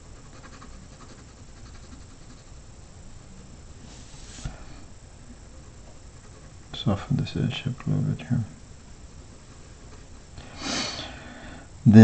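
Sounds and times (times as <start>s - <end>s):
pencil scratching on paper: 0.0s - 2.6s, 5.6s - 6.8s.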